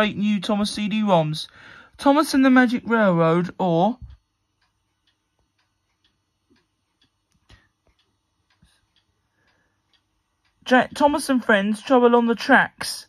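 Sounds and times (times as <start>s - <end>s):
faint light ticks: 4.0s - 11.0s.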